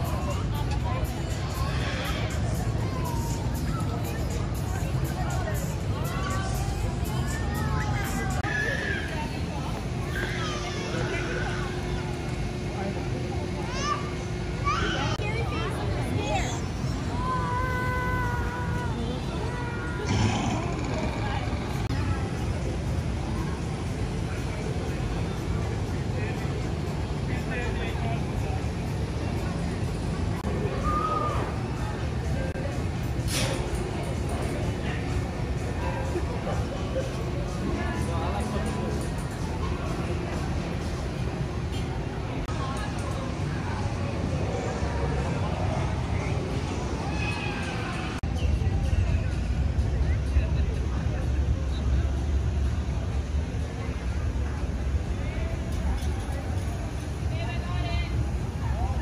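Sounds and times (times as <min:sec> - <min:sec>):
distant voices: 0:00.0 - 0:59.0
faint background music: 0:00.0 - 0:59.0
low street rumble: 0:00.0 - 0:59.0.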